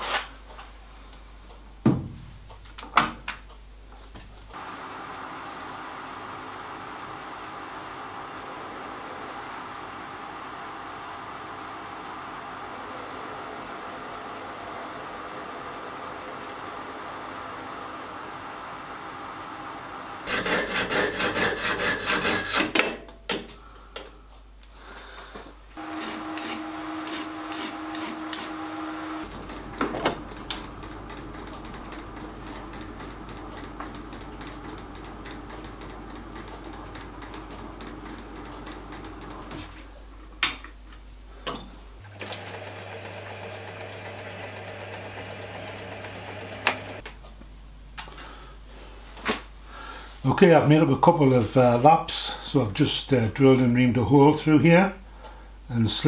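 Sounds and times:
steady high whine: 0:04.6 - 0:20.3, 0:25.8 - 0:39.6
lathe running: 0:04.6 - 0:20.6, 0:25.8 - 0:39.5
sharp clicks: 0:29.2 - 0:39.6.

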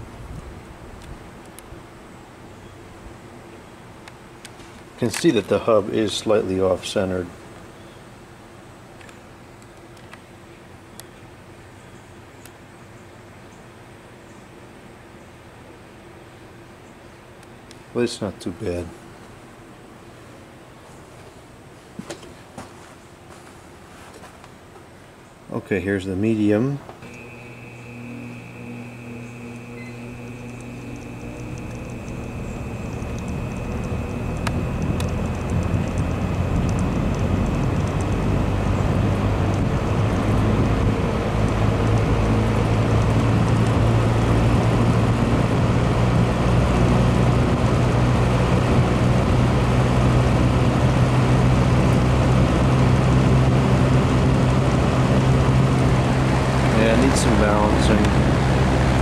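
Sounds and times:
box fan motor hum and air rush: 0:00.0 - 0:09.5, 0:26.9 - 0:59.0.

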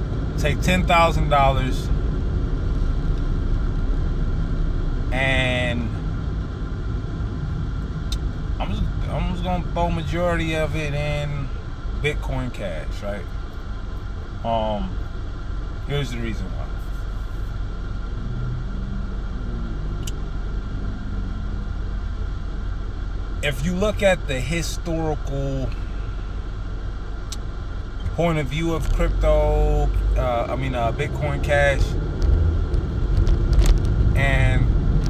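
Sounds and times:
car engine idling: 0:00.0 - 0:35.0.

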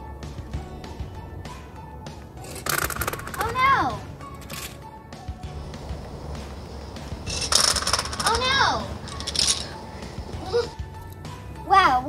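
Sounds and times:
background music with steady beat: 0:00.0 - 0:12.0
mints scattering on stone: 0:02.4 - 0:03.5, 0:07.3 - 0:09.8.

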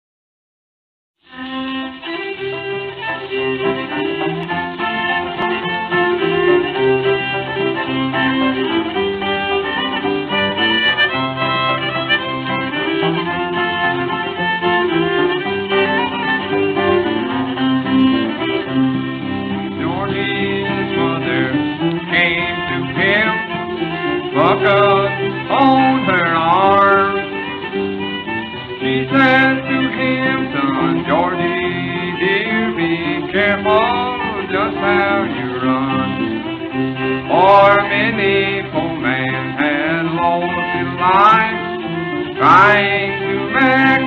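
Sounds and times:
string band instrumental: 0:01.2 - 0:44.0
man singing: 0:19.7 - 0:27.4, 0:28.8 - 0:36.3, 0:37.2 - 0:44.0.

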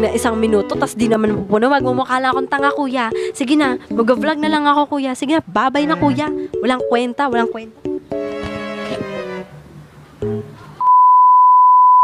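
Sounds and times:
steady test tone beep: 0:10.2 - 0:12.0.

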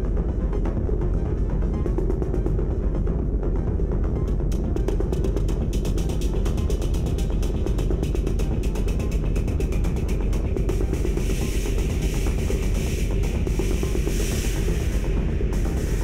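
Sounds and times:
heavy low drone: 0:05.6 - 0:16.0.

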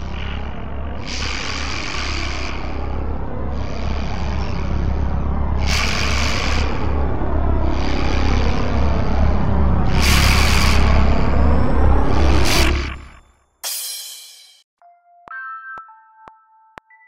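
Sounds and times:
loud low rumble: 0:00.0 - 0:13.1.

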